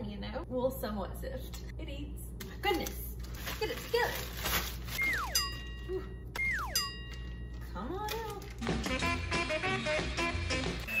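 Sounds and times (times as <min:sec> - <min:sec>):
falling whistle tone: 0:05.0 - 0:05.5
held ringing tone: 0:05.0 - 0:07.6.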